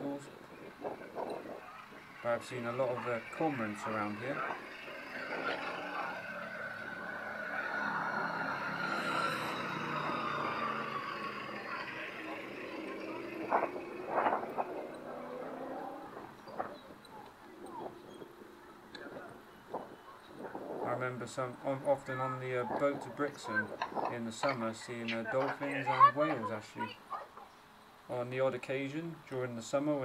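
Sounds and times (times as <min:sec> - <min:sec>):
vehicle passing: 0:00.0 - 0:27.0
voices of passers-by: 0:00.0 - 0:28.2.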